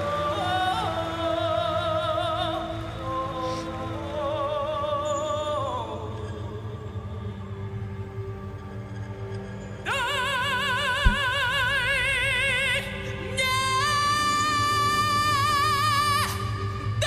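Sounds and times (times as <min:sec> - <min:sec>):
man singing with vibrato: 0:09.8 - 0:17.0.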